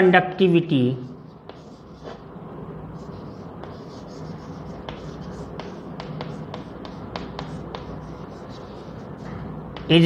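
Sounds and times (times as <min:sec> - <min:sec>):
chalk scratching: 0:01.2 - 0:02.3, 0:03.0 - 0:10.0
chalk tapping on blackboard: 0:01.4 - 0:02.2, 0:03.3 - 0:09.1, 0:09.7 - 0:10.0.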